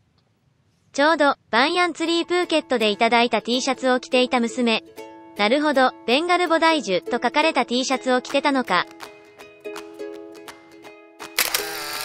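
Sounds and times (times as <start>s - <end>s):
background music held notes: 2.0s - 11.4s
camera shutter sound effect: 11.2s - 12.0s.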